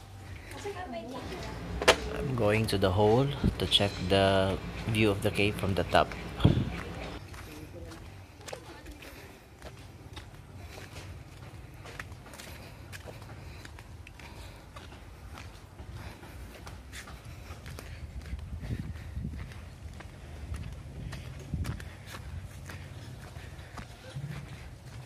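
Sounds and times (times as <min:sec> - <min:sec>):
footsteps on dirt and grass: 0:00.0 - 0:25.0
low steady rumble: 0:01.2 - 0:07.2.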